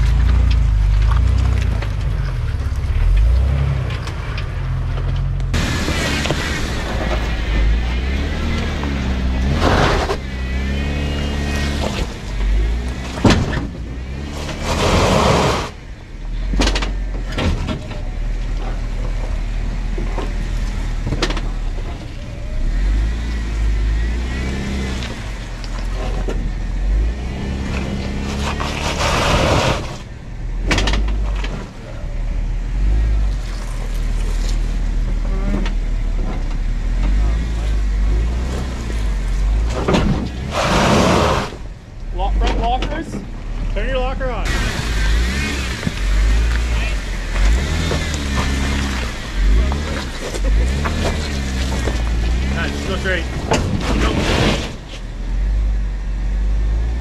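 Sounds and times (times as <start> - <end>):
engine revving up and down: 0.0 - 15.8, 18.6 - 57.0.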